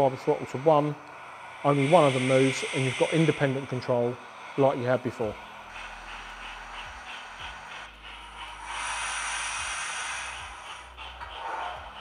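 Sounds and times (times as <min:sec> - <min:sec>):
steam hiss: 0:00.0 - 0:12.0
steam locomotive chuffs: 0:00.0 - 0:12.0.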